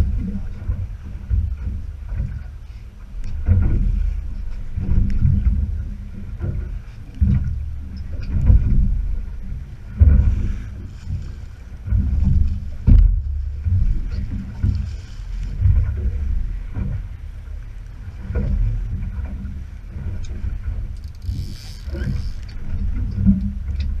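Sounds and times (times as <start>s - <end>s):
water slapping against hull: 0.0s - 24.0s
wind on microphone: 0.0s - 24.0s.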